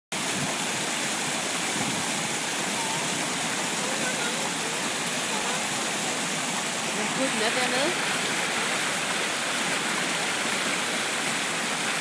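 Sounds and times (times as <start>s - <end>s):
stream rushing over rocks: 0.1s - 12.0s.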